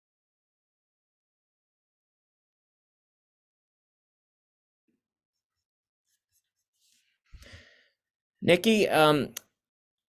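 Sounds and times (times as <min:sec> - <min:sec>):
soft breath or sigh: 0:07.3 - 0:08.0.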